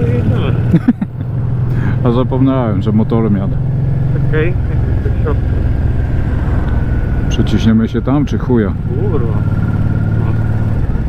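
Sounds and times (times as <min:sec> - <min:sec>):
motorcycle engine rumbling: 0:00.0 - 0:11.0.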